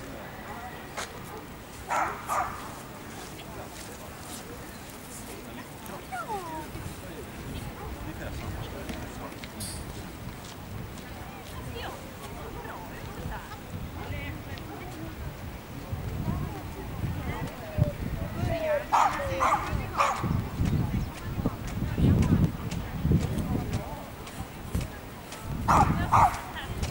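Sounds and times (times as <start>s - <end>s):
small dog whining: 6.1s - 6.7s.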